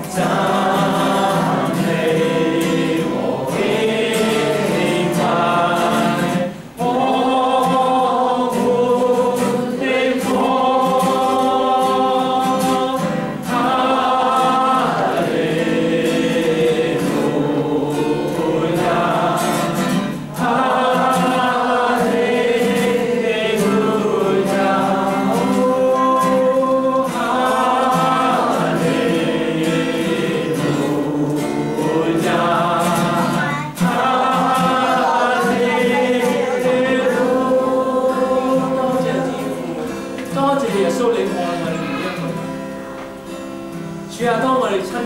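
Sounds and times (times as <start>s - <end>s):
acoustic guitar: 0.0s - 45.0s
congregation singing a hymn: 0.0s - 45.0s.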